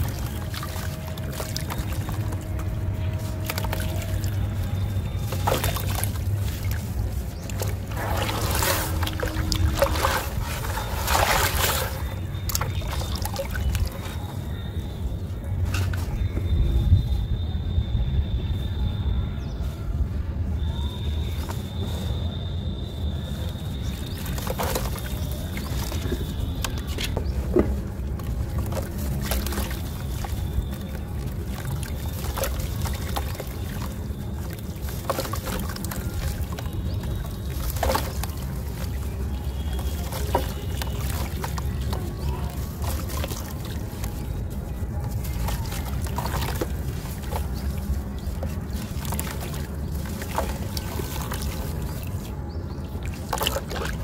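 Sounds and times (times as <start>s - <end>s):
grit pattering into water: 0.0s - 16.4s, 20.7s - 54.0s
water splashes: 0.0s - 16.4s, 20.6s - 54.0s.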